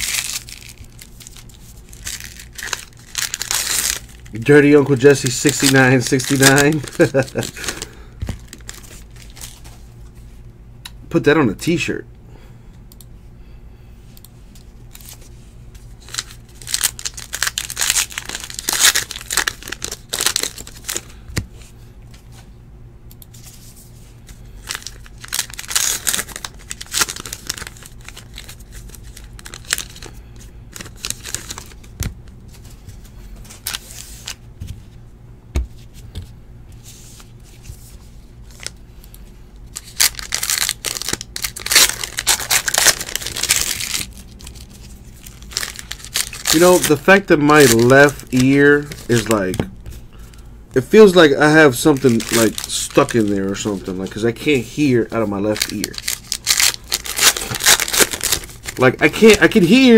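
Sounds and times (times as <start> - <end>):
wrappers torn open and crinkled: 0.0 - 9.6, 16.0 - 21.1, 24.6 - 32.0, 33.6 - 34.4, 39.6 - 49.5, 50.2 - 59.9.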